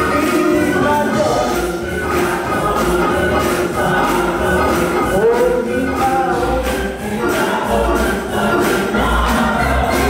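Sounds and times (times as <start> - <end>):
gospel choir singing: 0.0 - 10.0
instrumental accompaniment: 0.0 - 10.0.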